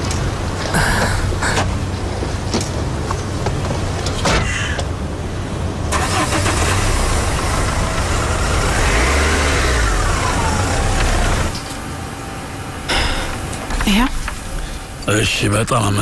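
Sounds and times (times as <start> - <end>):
van engine starting and running: 0.0 - 16.0.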